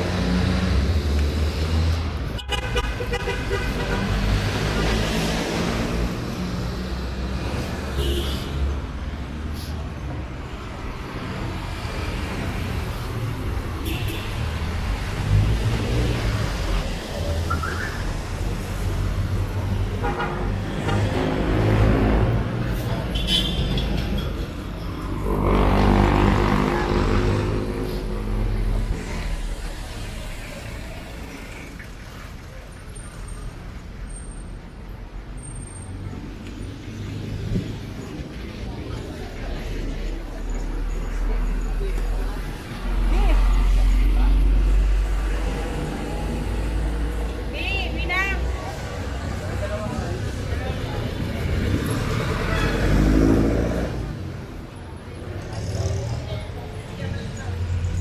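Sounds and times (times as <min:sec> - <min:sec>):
rumble of passing vehicles: 0:00.0 - 0:58.0.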